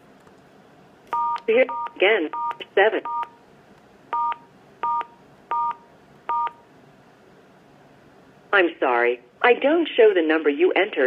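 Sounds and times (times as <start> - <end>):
phone keypad touch-tone beeps: 1.2 - 3.4, 4.2 - 6.6.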